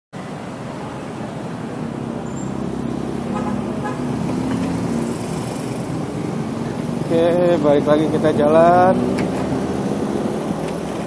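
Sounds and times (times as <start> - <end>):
dense road traffic: 0.1 - 11.0.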